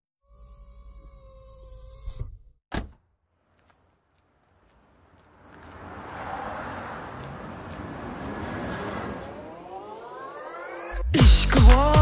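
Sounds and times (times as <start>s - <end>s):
rushing noise rising in pitch: 8.4s - 11.1s.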